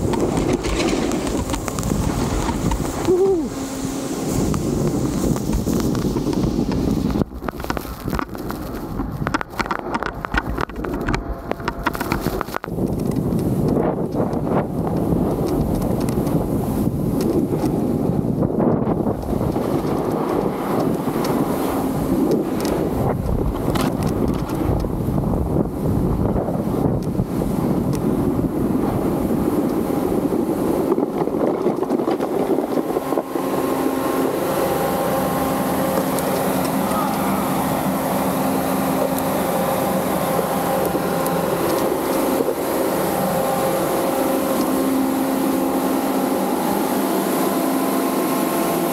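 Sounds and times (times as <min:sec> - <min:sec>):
snow gun fan humming: 0:00.0 - 0:10.2, 0:11.3 - 0:48.9
snowboard scraping over snow: 0:00.0 - 0:48.9
wind buffeting microphone: 0:00.0 - 0:48.9.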